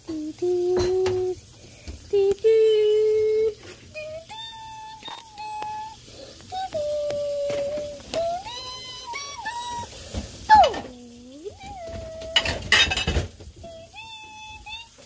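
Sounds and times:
child humming high notes: 2.5 - 9.9.

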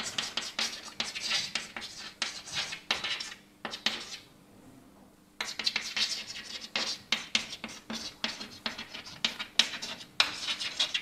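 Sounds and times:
chalk scratching on chalkboard: 0.0 - 4.3, 5.4 - 11.0.

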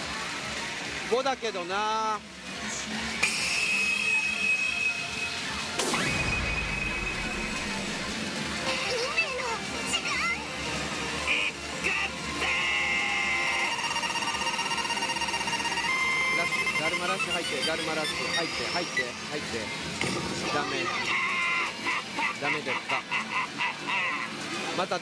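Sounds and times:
pachinko machine beeping tones: 3.3 - 22.7
rising electronic tone: 5.8 - 8.2
sweeping electronic effect: 5.8 - 8.2
electronic machine music: 6.0 - 8.2, 11.3 - 19.2.

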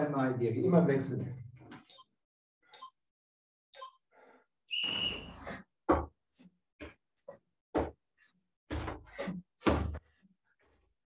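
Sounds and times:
short hissing whistle: 4.7 - 5.3.

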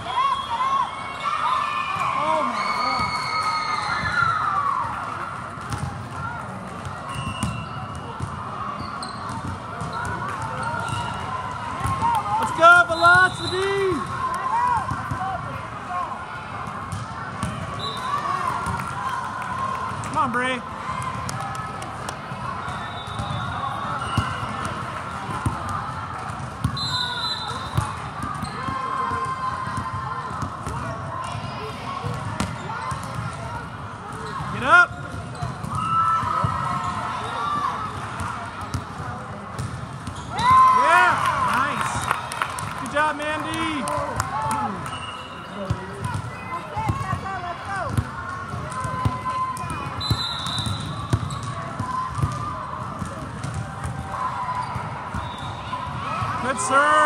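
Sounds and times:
crowd chatter and shouting: 0.0 - 57.0
volleyballs struck and bouncing: 3.9 - 15.9, 16.5 - 26.8, 27.4 - 40.6, 41.6 - 56.6
shoe squeaks on court: 8.8 - 11.2.

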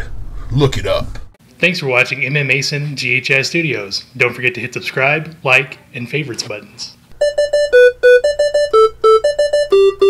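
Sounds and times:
electronic keyboard staccato jingle: 7.2 - 10.0.

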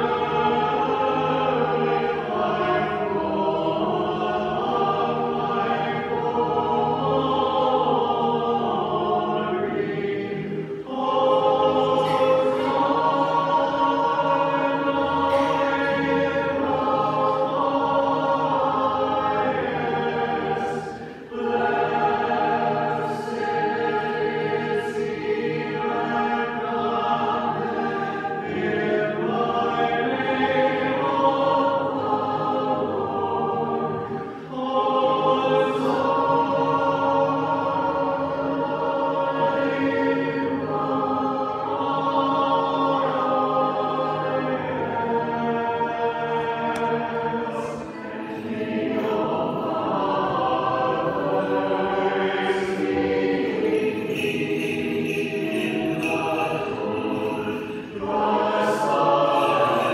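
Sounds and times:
choir chanting in harmony: 0.0 - 59.9.

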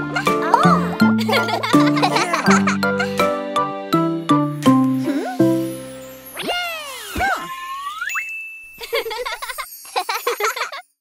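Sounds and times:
bright tinkling notes: 4.5 - 11.0
rising chime tone: 5.3 - 10.4.

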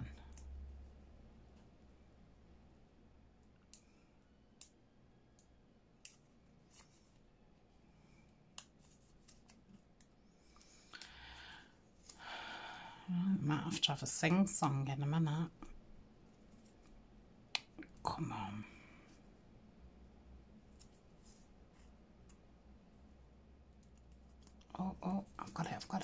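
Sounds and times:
soft paper rustle: 6.2 - 12.2.

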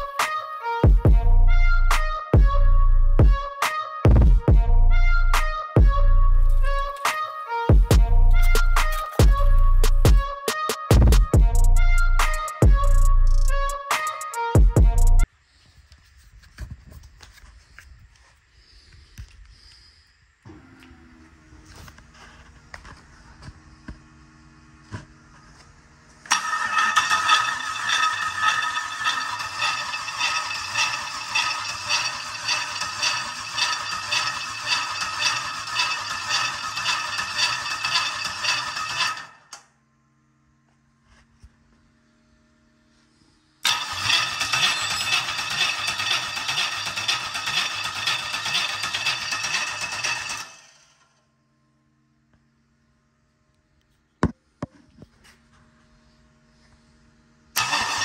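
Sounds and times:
starter motor cranking engine: 26.2 - 39.7, 43.6 - 51.2, 57.5 - 58.0.

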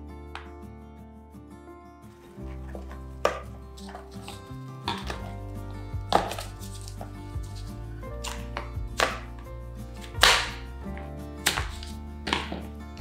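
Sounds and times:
background music with bass: 0.0 - 13.0.

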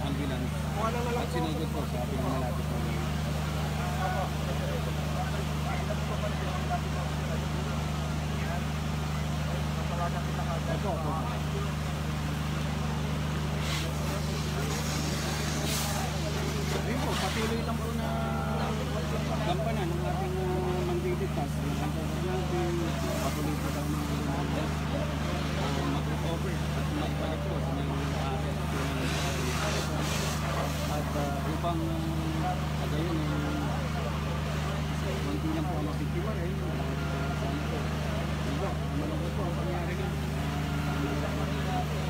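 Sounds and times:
people talking indistinctly: 0.0 - 42.0.

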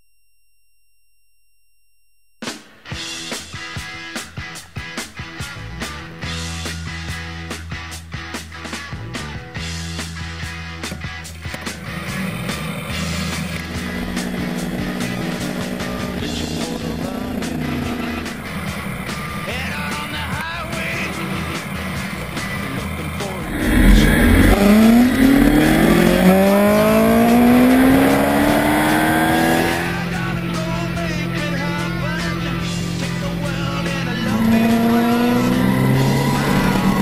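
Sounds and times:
rock music: 2.5 - 37.0
motorcycle engine accelerating: 11.9 - 19.4, 21.8 - 37.0.

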